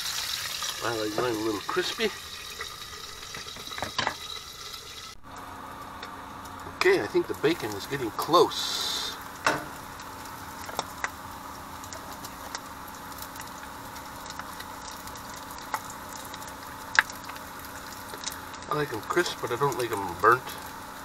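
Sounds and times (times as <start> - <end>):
bacon sizzling in a frying pan: 0.0 - 21.0.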